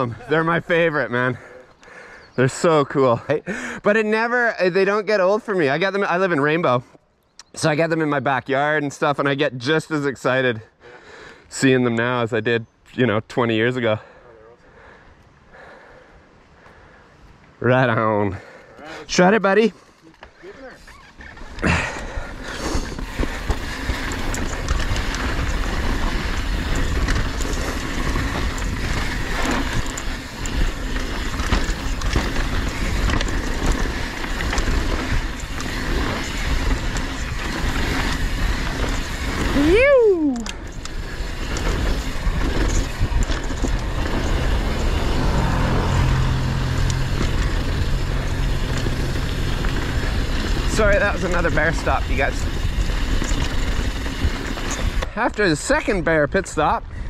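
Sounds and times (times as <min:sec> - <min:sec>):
bike tyres rattling over dirt: 0:19.2 - 0:57.0.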